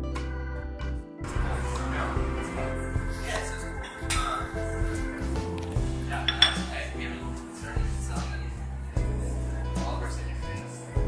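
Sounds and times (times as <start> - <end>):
background music: 0.0 - 11.0
ceramic saucer clinking on stone: 6.2 - 6.8.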